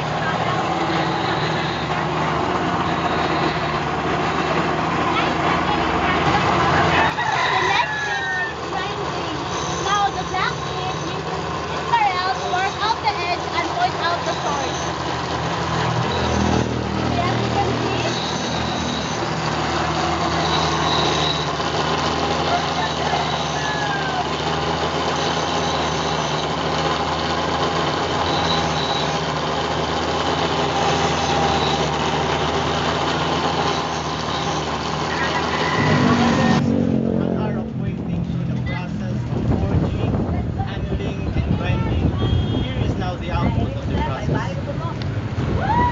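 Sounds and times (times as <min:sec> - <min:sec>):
grinding machine motor humming: 0:00.0 - 0:45.4
knife blade against grinding wheel: 0:30.0 - 0:36.5.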